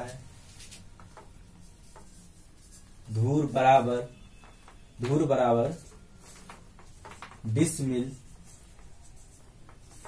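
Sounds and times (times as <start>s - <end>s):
marker pen writing on paper: 0.6s - 3.3s, 4.2s - 7.5s, 8.1s - 10.0s.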